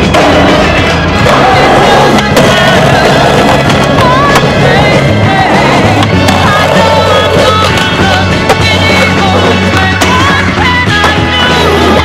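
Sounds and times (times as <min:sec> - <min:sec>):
loud music with steady bass line: 0:00.0 - 0:12.0
skateboard clacking: 0:00.0 - 0:12.0
skateboard grinding on metal rails: 0:00.0 - 0:12.0.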